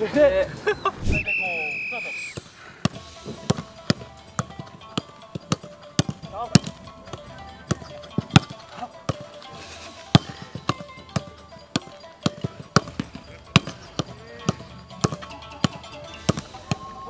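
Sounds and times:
faint background music: 0:03.0 - 0:17.0.

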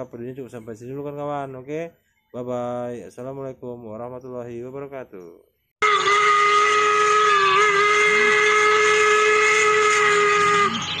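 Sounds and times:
steam locomotive whistle blast: 0:05.8 - 0:11.0.

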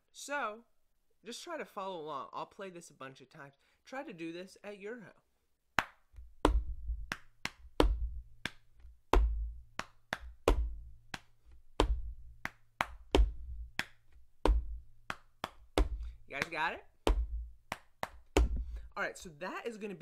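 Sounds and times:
hand patting chest: 0:05.8 - 0:18.9
hand tapping wooden tabletop: 0:06.4 - 0:10.8, 0:11.8 - 0:14.8, 0:15.4 - 0:18.8.

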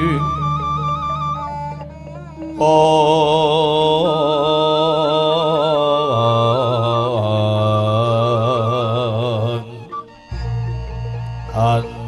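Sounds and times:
man chanting: 0:00.0 - 0:01.4, 0:02.2 - 0:10.6, 0:11.3 - 0:12.0
gamelan accompaniment: 0:00.0 - 0:03.0.

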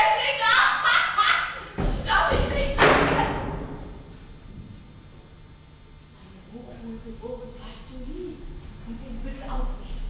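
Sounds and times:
heavy thud on a stage: 0:01.8 - 0:03.9
voice: 0:06.2 - 0:10.0.

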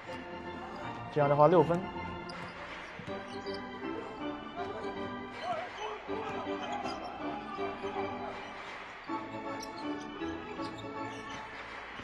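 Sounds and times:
arena background music: 0:00.0 - 0:12.0.

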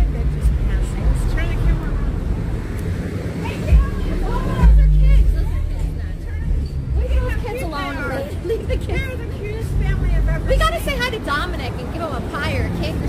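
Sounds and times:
steady low rumble: 0:00.0 - 0:11.6
people talking indistinctly: 0:00.0 - 0:13.0.

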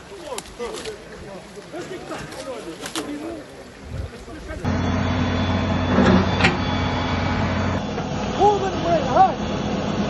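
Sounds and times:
engine humming: 0:04.6 - 0:10.0.

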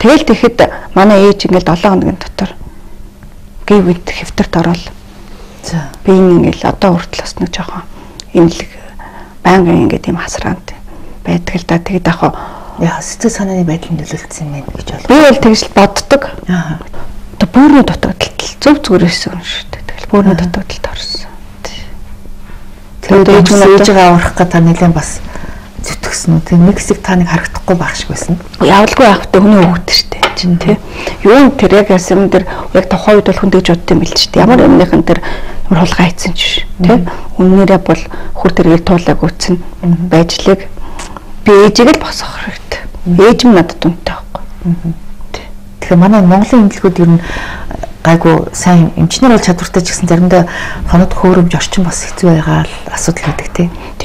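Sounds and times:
people talking: 0:00.0 - 0:02.6, 0:03.7 - 0:05.0, 0:05.6 - 0:22.0, 0:23.0 - 0:54.0
faint steady hum: 0:00.0 - 0:54.0.

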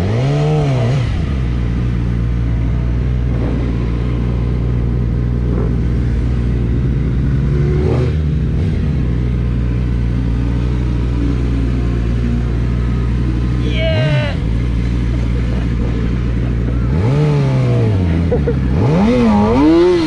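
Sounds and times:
motorcycle engine at low revs: 0:00.0 - 0:20.0.

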